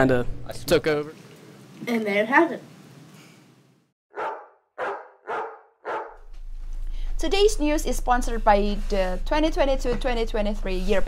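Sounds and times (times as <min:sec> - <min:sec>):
dog barking: 0:04.1 - 0:06.2.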